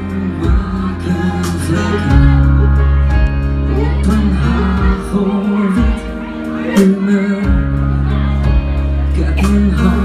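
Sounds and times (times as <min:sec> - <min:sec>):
live pop band playing ballad: 0:00.0 - 0:10.0
man singing: 0:00.0 - 0:10.0.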